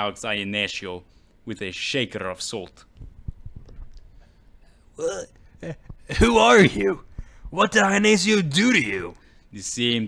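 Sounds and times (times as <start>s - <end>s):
man's short vocal sounds: 5.0s - 5.9s.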